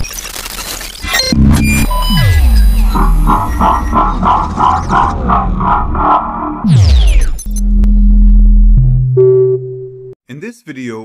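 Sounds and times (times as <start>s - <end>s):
synthesizer pulse: 1.3s - 10.2s
steady low bass: 1.4s - 10.2s.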